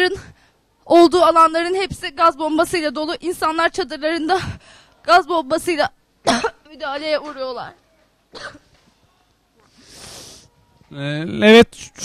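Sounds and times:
woman coughing: 6.2s - 6.6s, 8.3s - 8.7s
soft hiss: 8.6s - 10.9s.

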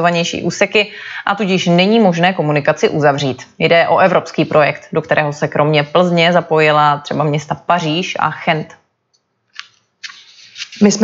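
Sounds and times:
woman speaking: 0.0s - 8.9s, 10.7s - 11.0s
scratchy rustle: 10.0s - 11.0s.

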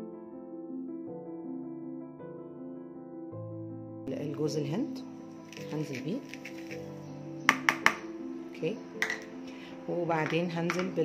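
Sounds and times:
soft background music: 0.0s - 11.0s
plastic cup tapping bowl: 7.5s - 8.1s, 9.0s - 9.3s, 10.2s - 11.0s.

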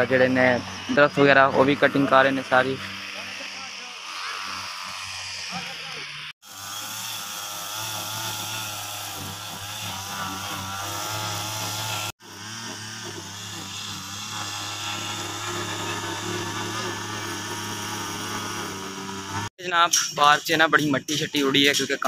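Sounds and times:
brush cutter engine cutting grass: 0.0s - 19.5s.

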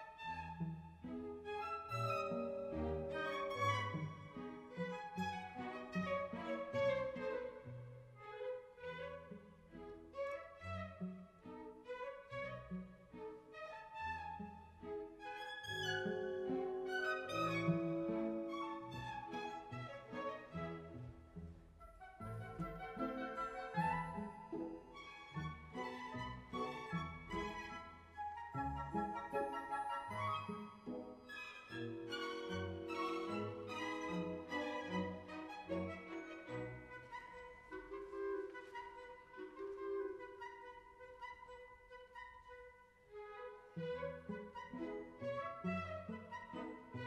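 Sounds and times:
orchestra playing classical music: 0.0s - 42.4s, 43.3s - 47.0s.

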